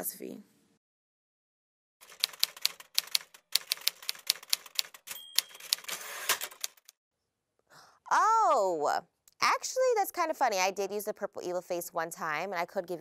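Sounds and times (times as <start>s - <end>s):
typewriter keys clacking: 2.0s - 6.9s
typewriter bell ding: 5.0s - 6.6s.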